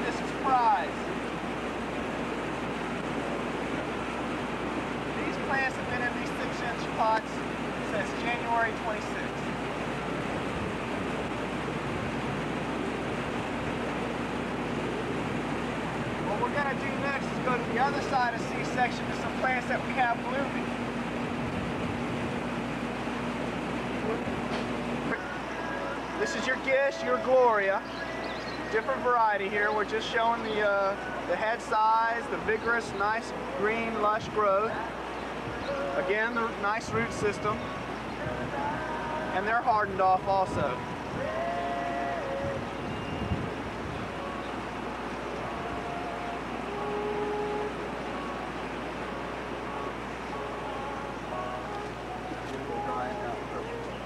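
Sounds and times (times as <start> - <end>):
constant low hum: 0.0 - 54.0
steady hiss and rumble: 0.0 - 54.0.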